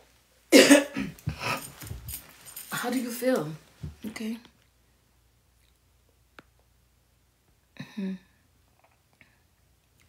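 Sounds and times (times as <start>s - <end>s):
woman coughing: 0.5s - 1.7s.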